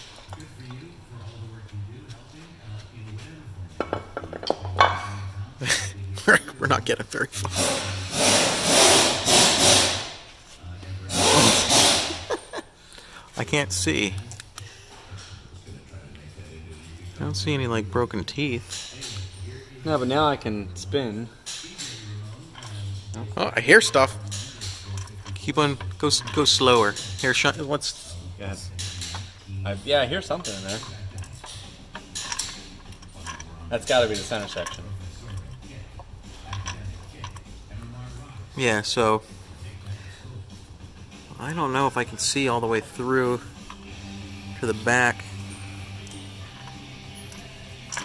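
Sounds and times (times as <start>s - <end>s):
metal scraping on metal: 7.4s - 10.3s, 11.1s - 12.3s, 21.4s - 39.2s
metallic clicks from gears: 45.4s - 48.0s.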